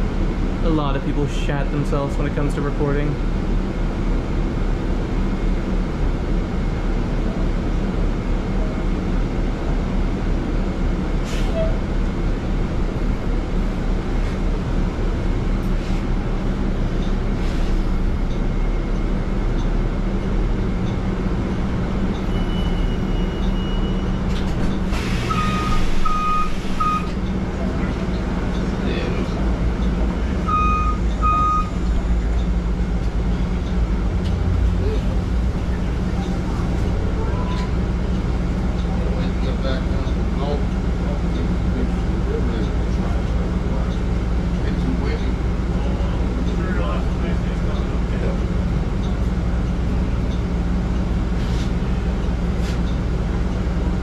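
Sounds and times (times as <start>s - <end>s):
bus drivetrain hum: 0.0s - 54.0s
road noise: 0.0s - 54.0s
short beeps: 22.2s - 24.2s, 25.3s - 27.2s, 30.5s - 31.9s.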